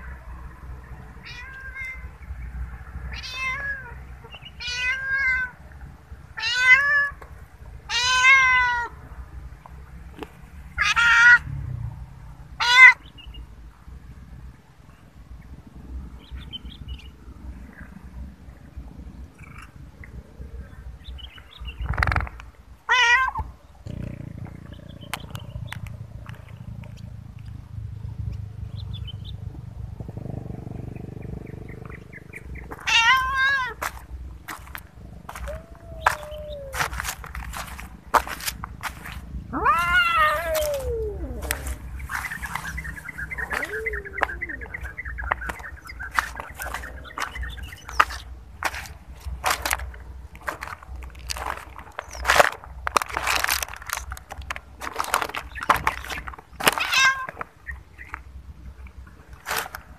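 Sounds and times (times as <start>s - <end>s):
cats meowing: 1.2s - 2.2s, 3.0s - 5.6s, 6.4s - 7.2s, 7.9s - 9.0s, 10.8s - 11.5s, 12.6s - 13.0s, 22.9s - 24.0s, 32.7s - 38.3s, 39.4s - 48.1s, 56.6s - 57.5s
rubbish crunching and clicking: 33.8s - 39.3s, 43.4s - 57.5s.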